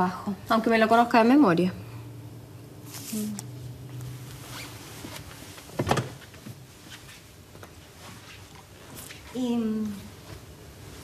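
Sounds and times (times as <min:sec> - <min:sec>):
desk handling noises: 0:05.7 - 0:06.6.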